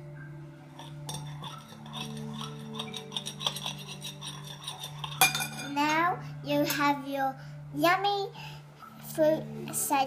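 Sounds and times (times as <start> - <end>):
metal spoon clinking on ceramic bowl: 0.8 - 6.0.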